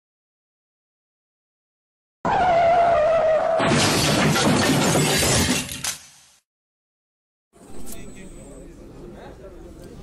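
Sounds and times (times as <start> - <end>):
loud shattering crash: 3.6 - 6.1.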